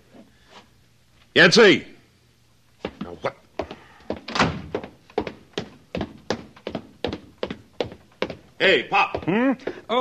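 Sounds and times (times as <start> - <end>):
footsteps: 2.8 - 9.8.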